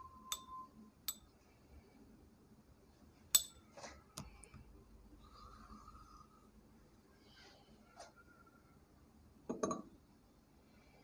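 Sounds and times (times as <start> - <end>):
paintbrush clinking glass jar: 0.2 - 1.3, 3.4 - 3.6.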